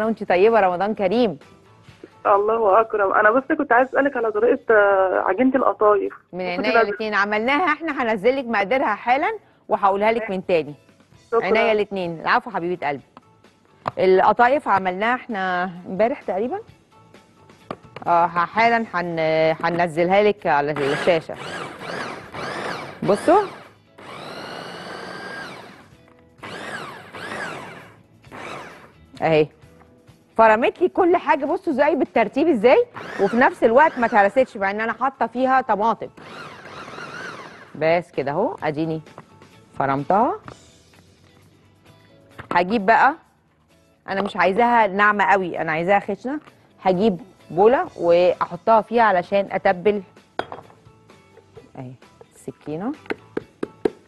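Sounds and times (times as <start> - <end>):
soft background music: 0.0 - 54.0
electric food chopper motor whining: 20.7 - 29.0, 32.9 - 34.4, 36.1 - 37.8.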